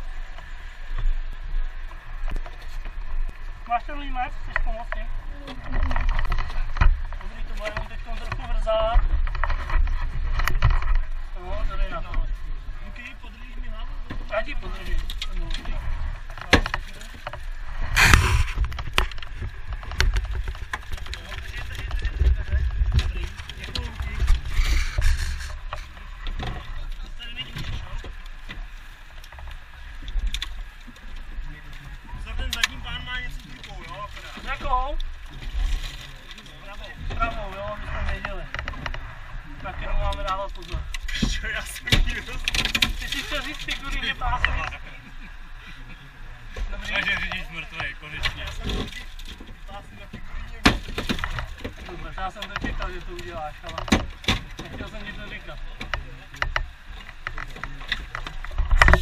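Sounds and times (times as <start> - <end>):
steady low rumble: 15.7 - 27.2.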